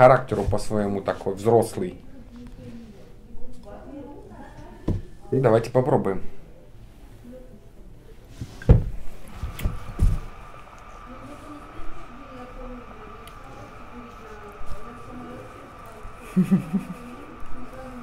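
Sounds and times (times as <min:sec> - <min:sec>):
faint background voices: 0:02.0 - 0:05.4, 0:06.2 - 0:18.0.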